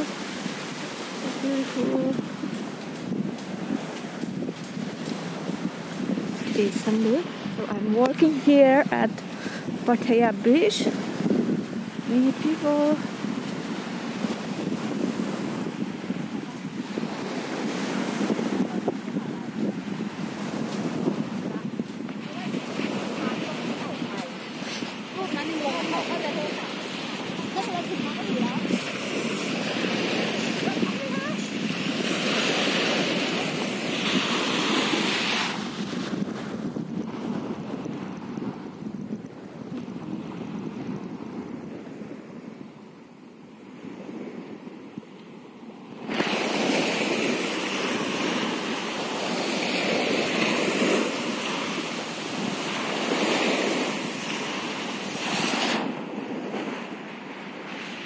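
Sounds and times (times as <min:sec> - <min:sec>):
small waves washing onto beach: 0:00.0 - 0:58.0
wind buffeting microphone: 0:00.0 - 0:58.0.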